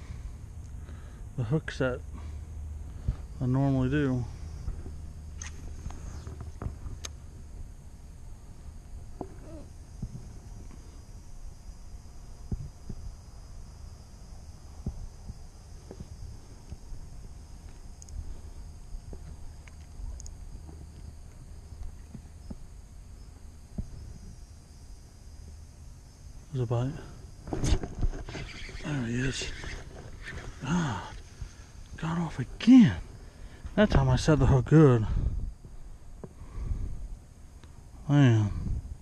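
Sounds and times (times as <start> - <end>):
low steady rumble: 0.0 - 39.0.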